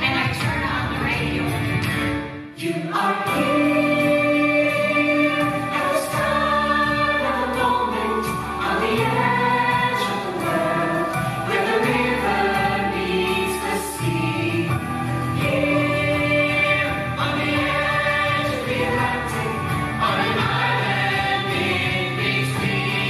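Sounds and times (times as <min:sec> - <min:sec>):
young performers singing in chorus: 0:02.6 - 0:23.0.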